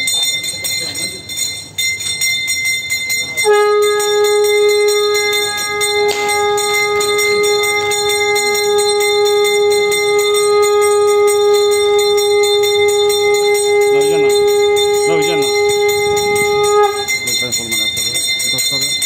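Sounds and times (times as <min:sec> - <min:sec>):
bells jingling: 0:00.0 - 0:19.0
steady pitched tone: 0:00.0 - 0:19.0.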